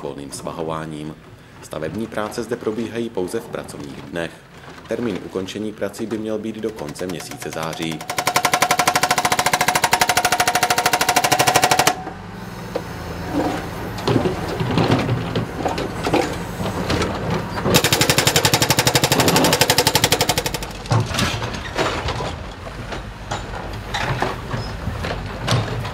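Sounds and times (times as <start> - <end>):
broken concrete clattering: 0.4 - 9.2, 13.4 - 25.9
hydraulic breaker hammering concrete: 6.5 - 12.3, 17.7 - 21.5
diesel engine running: 6.7 - 21.5.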